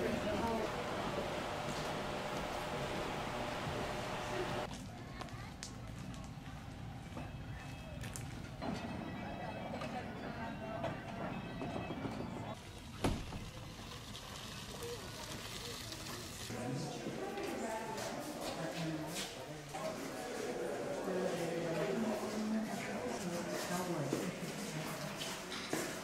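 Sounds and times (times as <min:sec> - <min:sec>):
people talking: 0:00.0 - 0:06.2, 0:14.8 - 0:25.5
faint music: 0:00.0 - 0:26.0.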